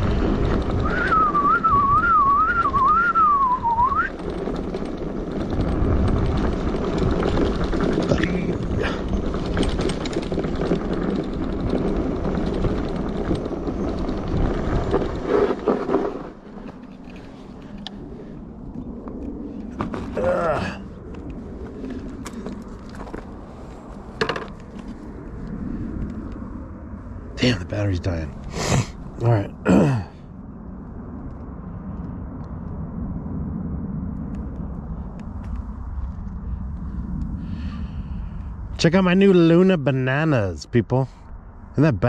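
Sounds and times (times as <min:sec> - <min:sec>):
bike rumbling on dirt trail: 0:00.0 - 0:41.7
wind rush on microphone: 0:00.0 - 0:42.0
whistled tune: 0:00.8 - 0:04.1.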